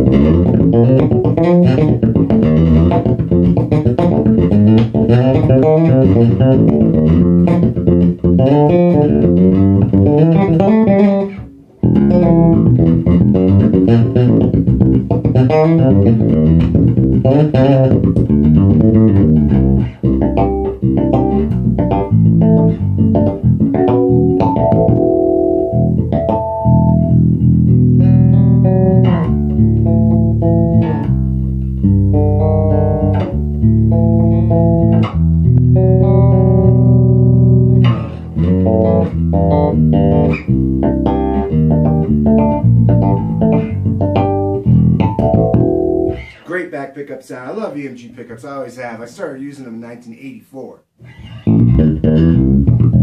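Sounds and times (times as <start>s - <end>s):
electric bass plucked notes: 0.0s - 46.8s, 51.0s - 53.0s.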